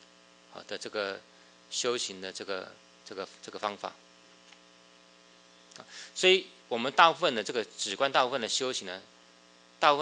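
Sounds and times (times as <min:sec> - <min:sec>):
faint electrical hum with hiss: 0:00.0 - 0:10.0.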